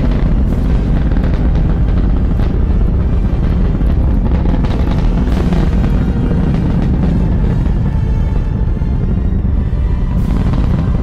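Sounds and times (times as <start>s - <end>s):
dramatic soundtrack music: 0.0s - 11.0s
rocket launch rumble: 0.0s - 11.0s.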